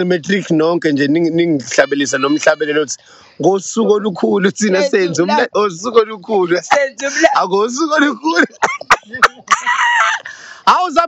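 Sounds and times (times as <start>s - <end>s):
bursts of laughter: 8.0s - 10.6s.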